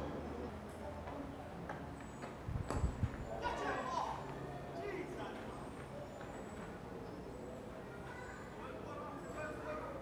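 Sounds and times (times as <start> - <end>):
open-air background rumble: 0.0 - 4.5.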